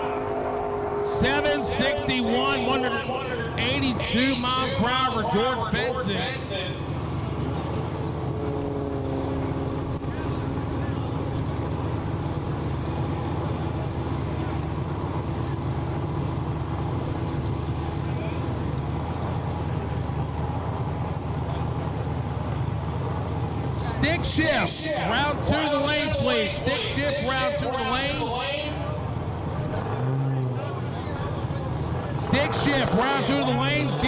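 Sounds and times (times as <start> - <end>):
faint droning tone: 0.0 - 3.6
vehicle engines rumbling: 0.0 - 34.0.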